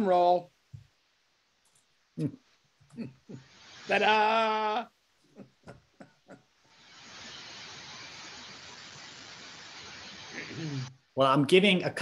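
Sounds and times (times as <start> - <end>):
steady hiss: 0.0 - 12.0
faint breathy sounds: 10.2 - 11.0.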